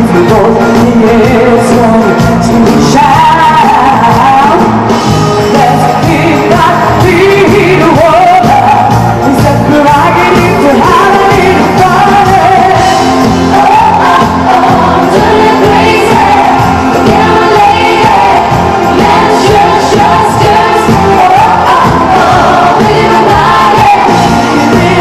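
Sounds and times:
live pop band playing: 0.0s - 25.0s
woman singing into microphone: 0.0s - 25.0s.

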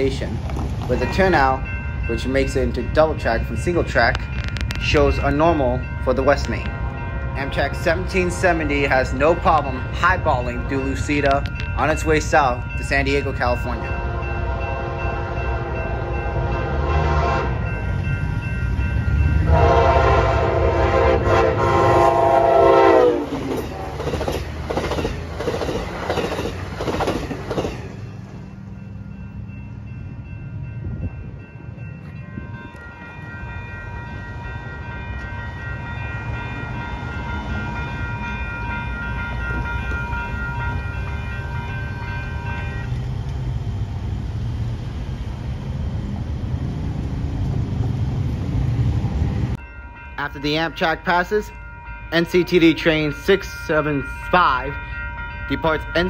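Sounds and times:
train horn: 14.0s - 17.7s, 19.4s - 24.1s.

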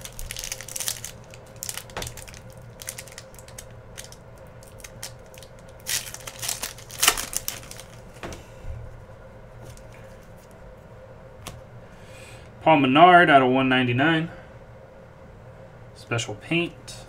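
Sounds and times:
foil wrapper crinkling and tearing: 0.0s - 8.1s.

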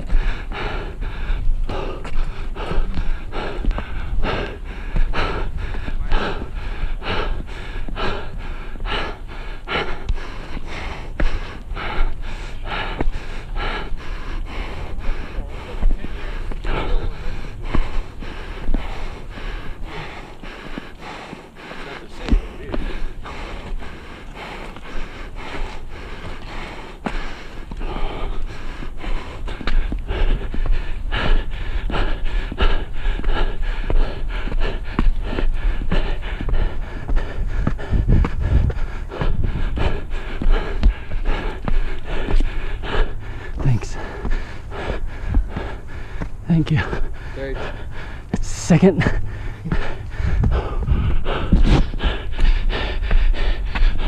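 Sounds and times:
footsteps on stairs: 0.0s - 54.0s
person panting hard: 0.0s - 54.0s.

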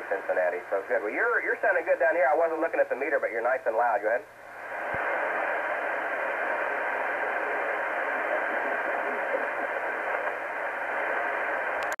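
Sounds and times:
radio band noise hiss: 0.0s - 12.0s.

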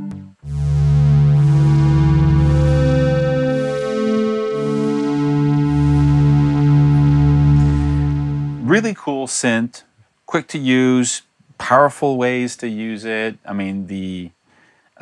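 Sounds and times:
sustained synth pad chords: 0.0s - 8.6s.

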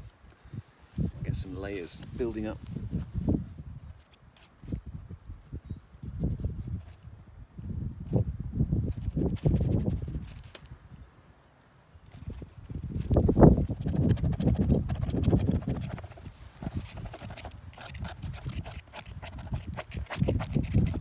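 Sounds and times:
wind buffeting microphone: 0.0s - 4.0s, 4.6s - 11.1s, 12.0s - 21.0s.

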